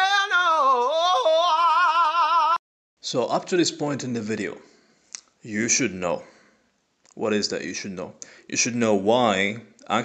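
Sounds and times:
person singing with vibrato: 0.0s - 2.6s.

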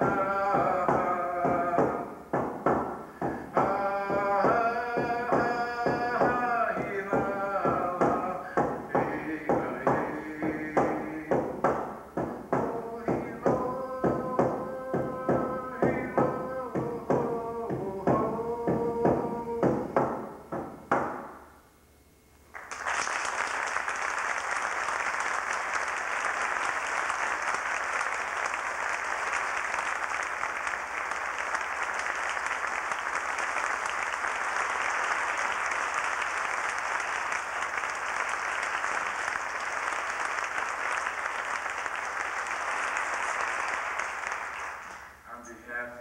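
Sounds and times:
audience applauding: 22.5s - 45.2s.

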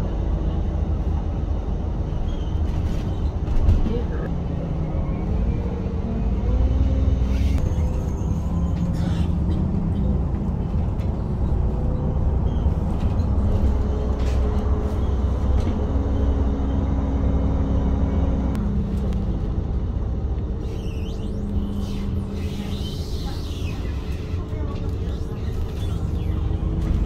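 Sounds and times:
bus engine and road rumble: 0.0s - 27.0s.

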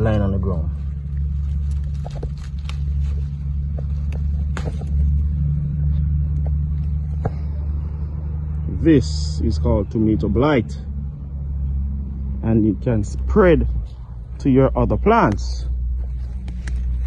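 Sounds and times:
plants rustling and clicking: 0.0s - 7.6s, 14.9s - 17.0s
steady low rumble: 0.0s - 17.0s.

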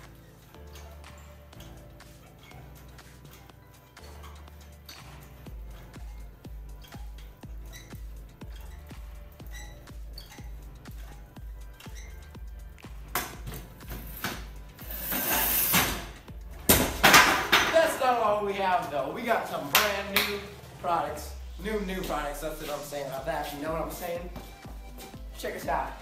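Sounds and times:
music with steady bass beat: 0.0s - 26.0s.

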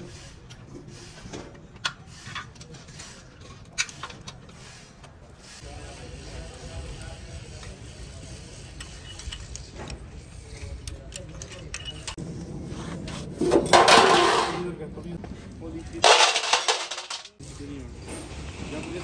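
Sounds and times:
metal scraping and clatter: 13.4s - 14.8s, 16.0s - 17.4s.

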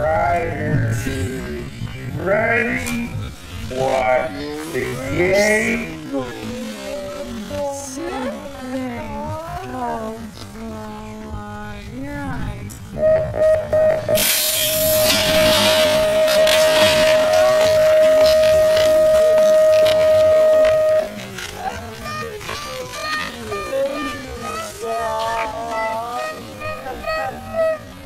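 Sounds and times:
slowed deep recorded call: 0.0s - 28.0s
long steady tone: 12.9s - 22.2s.

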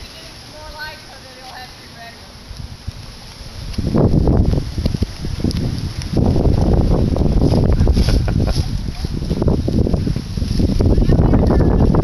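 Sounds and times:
wind buffeting the microphone: 0.0s - 12.0s.

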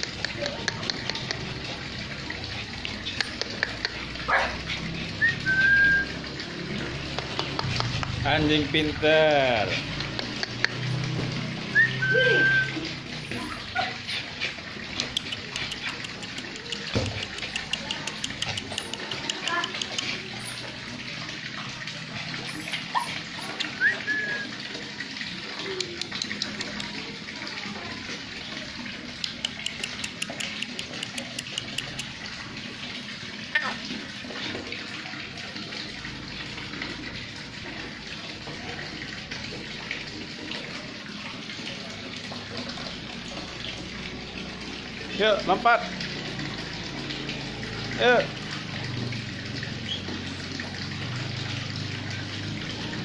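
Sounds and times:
falling water: 0.0s - 53.0s
water drips ticking: 0.0s - 53.0s
dog whining: 11.7s - 14.3s.

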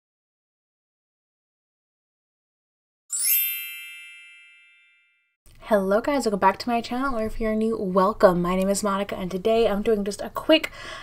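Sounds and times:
bright shimmering chime: 3.1s - 5.2s.

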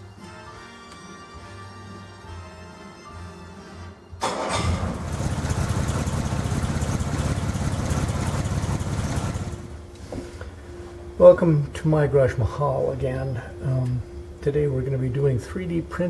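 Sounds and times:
soft music: 0.0s - 4.2s, 9.8s - 16.0s
car engine starting and running: 4.2s - 9.9s.

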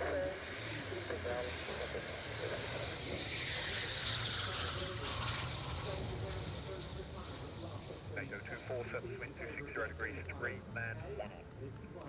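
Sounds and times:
faint radio chatter: 0.0s - 12.0s
jet rushing past with whine: 0.4s - 10.8s.

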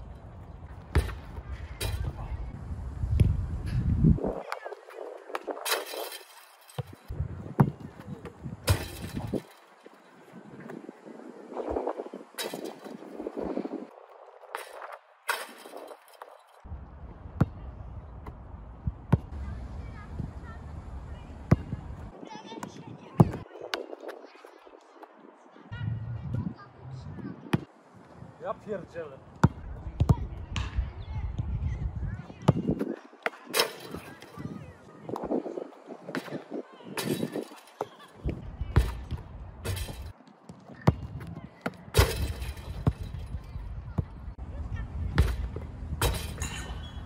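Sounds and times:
basketball striking rim: 8.6s - 9.6s, 38.8s - 40.1s, 41.9s - 43.3s, 45.2s - 46.7s.

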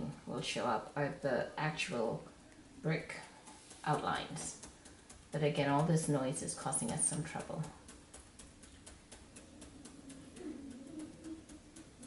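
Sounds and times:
faint regular ticking: 0.0s - 12.0s.

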